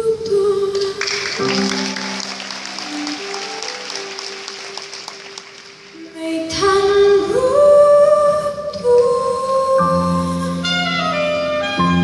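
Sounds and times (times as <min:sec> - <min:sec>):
live pop band music: 0:00.6 - 0:12.0.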